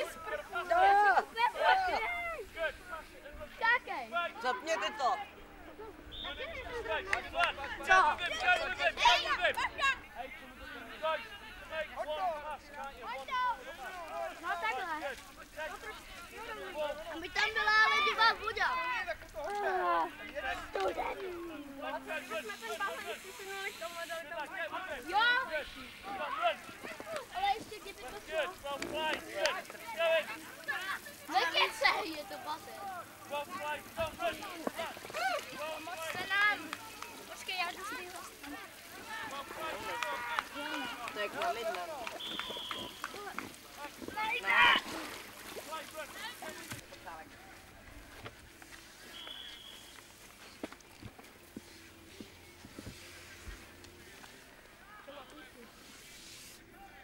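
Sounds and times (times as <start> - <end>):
children talking and calling out: 0.0 - 10.2, 12.4 - 24.0, 24.8 - 41.9, 42.8 - 47.4
children shouting: 29.3 - 34.0.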